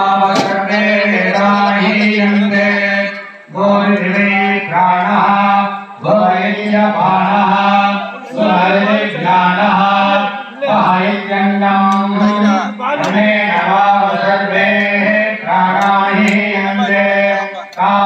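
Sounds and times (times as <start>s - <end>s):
person chanting mantras: 0.0s - 18.0s.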